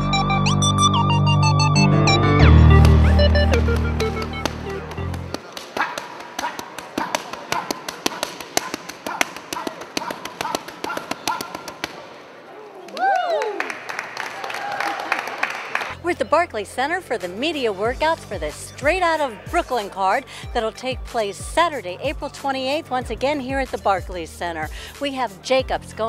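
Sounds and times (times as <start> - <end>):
electronic music: 0.0 - 5.4
boxing gloves striking mitts: 3.5 - 12.1
person's voice: 16.0 - 26.0.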